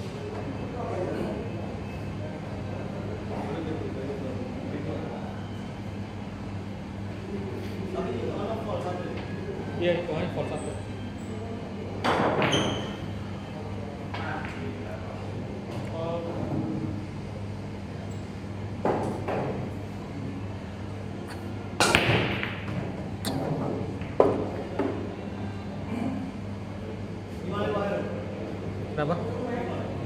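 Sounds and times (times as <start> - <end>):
cue ball cracking into pool balls: 21.3 - 24.6.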